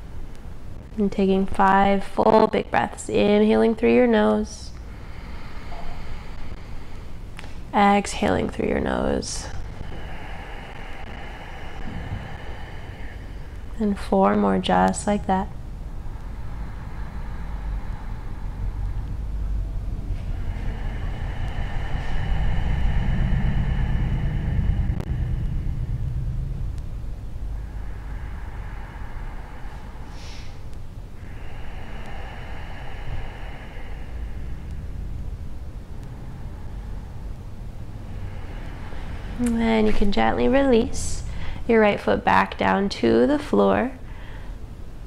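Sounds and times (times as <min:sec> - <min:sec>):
low rumble: 0:00.0 - 0:45.0.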